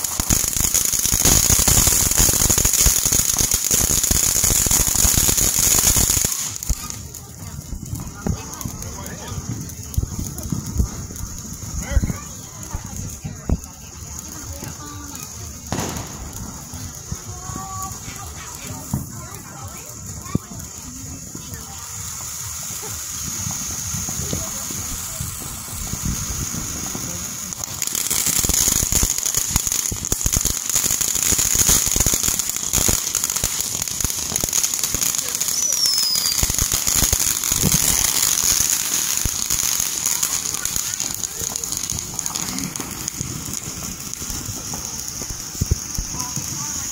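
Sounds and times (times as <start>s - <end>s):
firework spraying sparks hiss: 0.0s - 46.9s.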